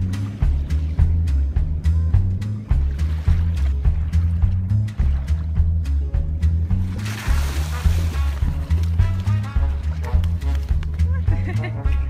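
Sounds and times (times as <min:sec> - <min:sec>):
background music with percussive beat: 0:00.0 - 0:12.0.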